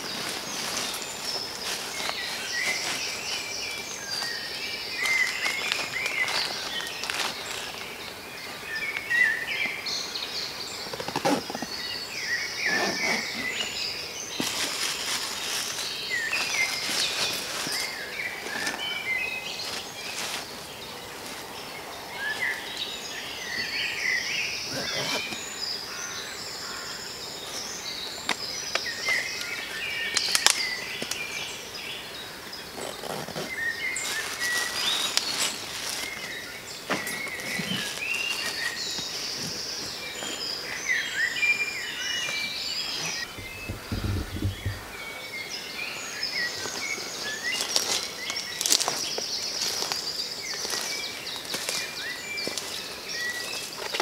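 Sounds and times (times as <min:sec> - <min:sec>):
birds singing and chirping: 0:00.0 - 0:54.0
low rumble: 0:43.3 - 0:45.1.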